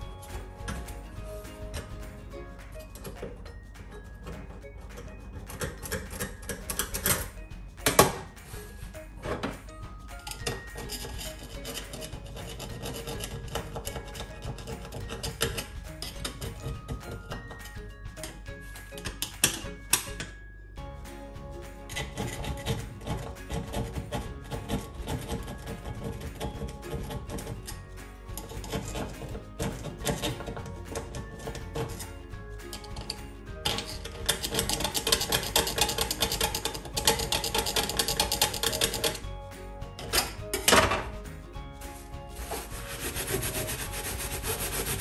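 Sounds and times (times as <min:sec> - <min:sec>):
background music: 0:00.0 - 0:45.0
brush scrubbing metal hob: 0:10.2 - 0:17.1, 0:21.9 - 0:27.7, 0:28.4 - 0:32.1, 0:32.8 - 0:39.2, 0:41.8 - 0:45.0.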